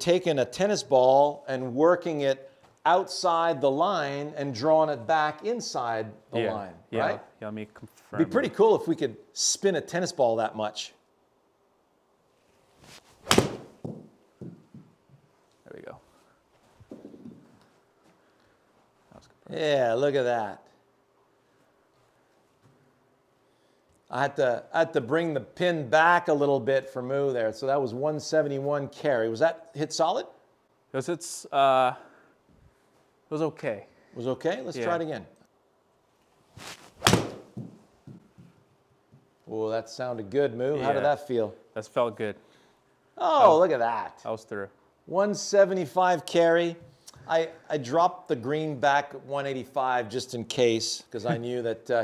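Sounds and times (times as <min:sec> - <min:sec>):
golf club swish: 0:12.6 - 0:13.8, 0:36.5 - 0:37.6
club smacking ball into screen: 0:13.2 - 0:14.6, 0:37.0 - 0:37.8.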